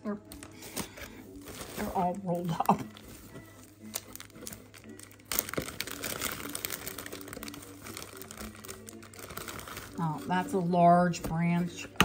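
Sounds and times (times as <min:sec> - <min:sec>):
plastic bags crinkling: 0:00.3 - 0:11.2.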